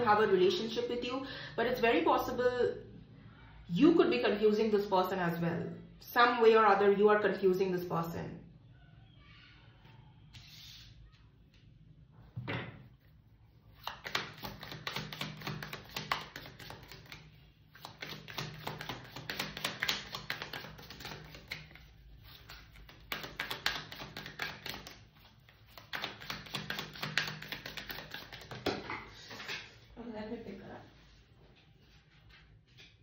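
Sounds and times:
cards being shuffled: 0:13.7 - 0:29.6.

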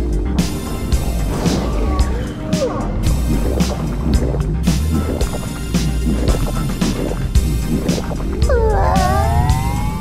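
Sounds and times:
cartoon background music: 0:00.0 - 0:10.0
underwater bubbling and churning water: 0:03.0 - 0:10.0.

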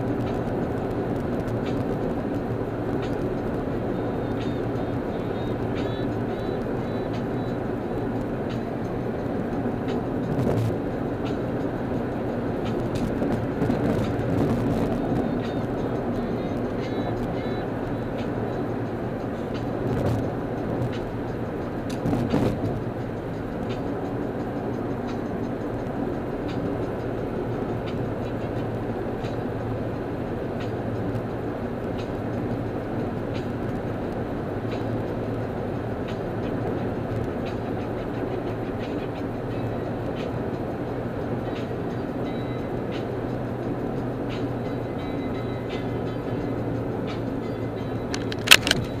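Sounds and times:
car road and engine noise: 0:00.0 - 0:49.0.

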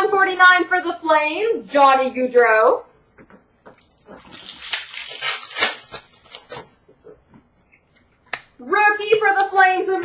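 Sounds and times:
card pack wrapper crinkling: 0:03.8 - 0:06.7.

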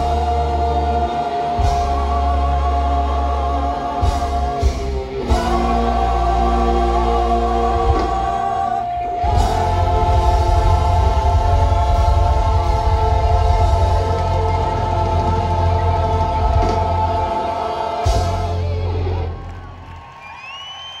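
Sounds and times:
live rock band playing: 0:00.0 - 0:19.4
singers and choir singing: 0:00.0 - 0:21.0
rising whistle from audience: 0:19.4 - 0:21.0.

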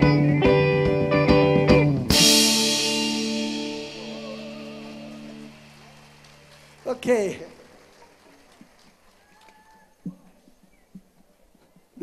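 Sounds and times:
electric guitars ringing: 0:00.0 - 0:07.6.

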